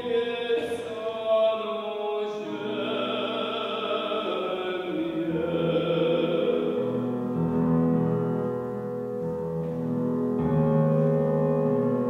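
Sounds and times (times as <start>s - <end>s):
digital piano chords: 2.5s - 12.0s.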